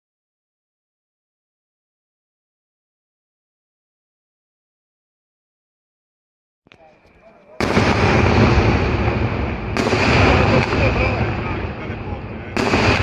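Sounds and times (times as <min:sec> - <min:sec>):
fireworks booming and crackling: 0:06.7 - 0:13.0.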